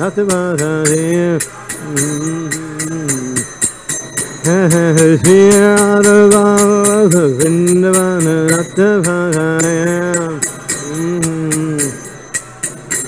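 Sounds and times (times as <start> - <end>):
man singing devotional chant: 0.0 - 3.6, 4.4 - 12.2
hand cymbals struck: 0.0 - 13.0.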